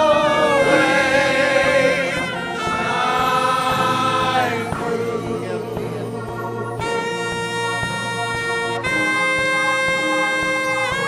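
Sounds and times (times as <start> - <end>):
choir singing gospel: 0.0 - 11.0.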